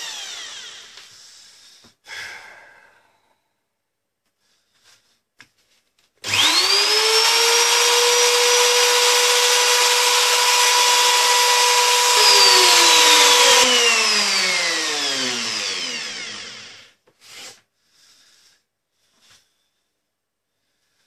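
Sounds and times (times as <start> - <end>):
electric router whining: 0.0 - 1.1, 6.2 - 16.9.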